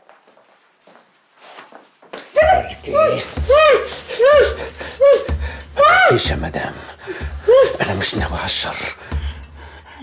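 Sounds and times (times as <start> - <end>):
woman's muffled cries: 2.4 - 6.2.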